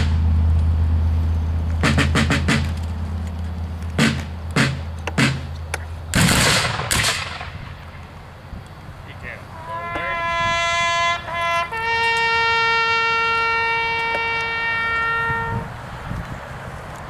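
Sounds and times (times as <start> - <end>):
field drum roll and strikes: 1.8 - 2.8, 4.0 - 5.5.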